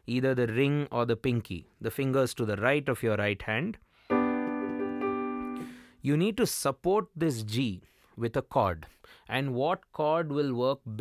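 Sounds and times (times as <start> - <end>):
digital piano chord: 4.1 - 5.9.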